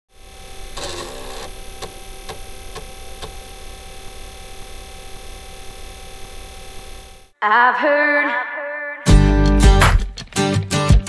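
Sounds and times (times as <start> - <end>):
electrical hum: 0.1 - 7.4.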